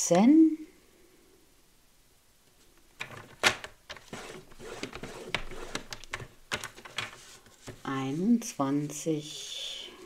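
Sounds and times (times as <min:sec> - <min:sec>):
sharp clicks and knocks: 0:03.0 - 0:07.8
paper scraping: 0:03.9 - 0:08.4.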